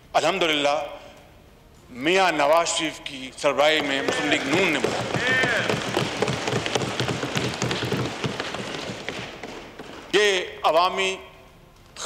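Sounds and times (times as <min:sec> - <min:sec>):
crowd applauding: 0:03.8 - 0:10.1.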